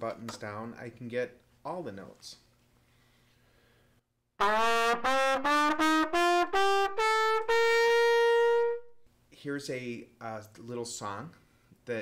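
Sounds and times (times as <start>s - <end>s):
trumpet playing rising scale: 4.4s - 9.0s.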